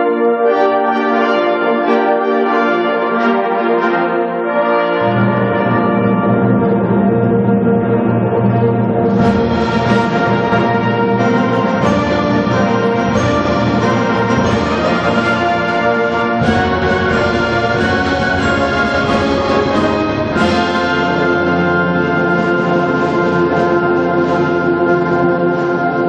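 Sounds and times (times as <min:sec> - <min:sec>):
wind band playing held chords: 0:00.0 - 0:26.0.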